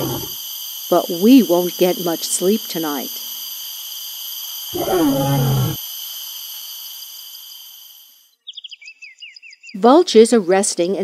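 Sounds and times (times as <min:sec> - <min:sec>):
lion roaring: 0:00.0 - 0:00.4, 0:04.8 - 0:05.8
night insects chirring: 0:00.0 - 0:10.0.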